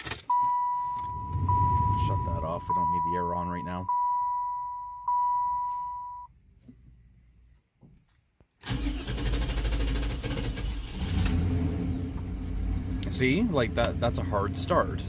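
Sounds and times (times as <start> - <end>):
dashboard warning chime: 0.3 - 6.3
starter cranking car engine: 8.6 - 12.2.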